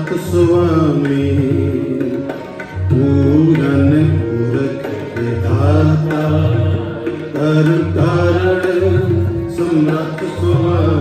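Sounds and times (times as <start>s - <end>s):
harmonium melody: 0.0s - 11.0s
tabla rhythm: 0.0s - 11.0s.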